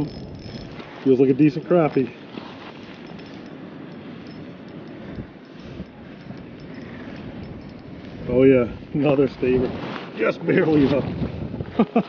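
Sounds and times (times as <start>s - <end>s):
fishing reel cranking: 0.0s - 8.0s
wind noise: 0.0s - 12.0s.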